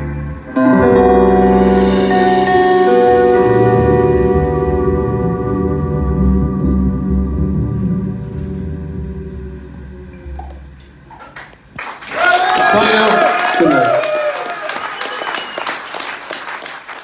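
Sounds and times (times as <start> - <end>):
electric guitar chord ringing: 0.0 - 11.1
bass guitar notes: 0.0 - 11.8.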